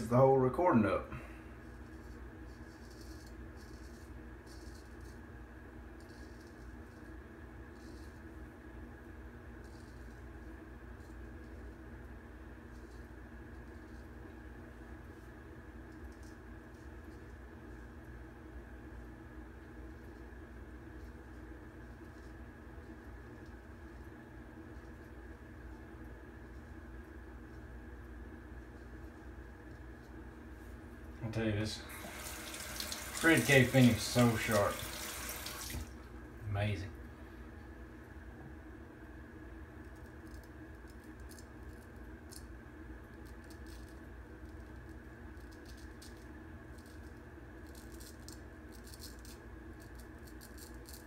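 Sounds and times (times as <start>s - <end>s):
low room hum: 0.0s - 51.0s.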